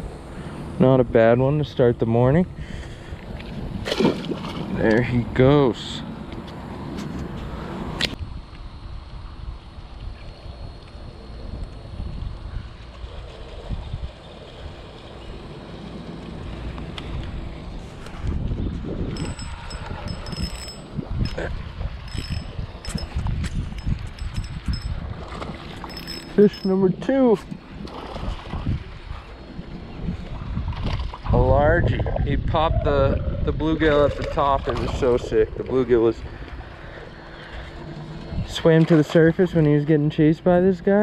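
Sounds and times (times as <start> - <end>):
wind buffeting microphone: 2.1 - 5.5, 6.8 - 38.7.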